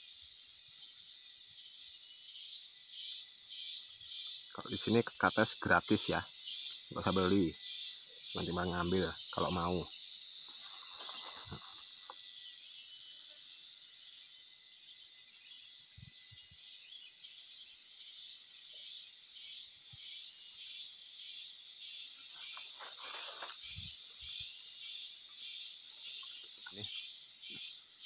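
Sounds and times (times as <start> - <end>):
insects high whine: 0.0 - 28.0
pulsing insect call: 0.0 - 28.0.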